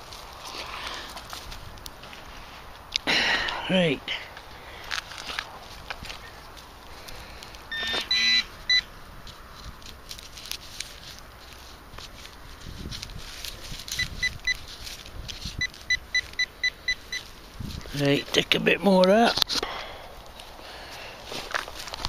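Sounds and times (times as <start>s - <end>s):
soil crunching: 0.0s - 22.0s
metal detector pinpointer beeping: 7.7s - 8.9s, 13.9s - 14.6s, 15.5s - 17.3s.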